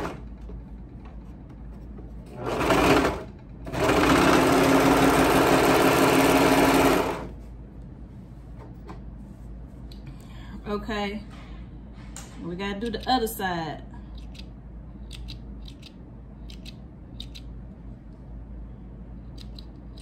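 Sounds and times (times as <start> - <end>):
overlock sewing machine running: 2.3 - 7.3.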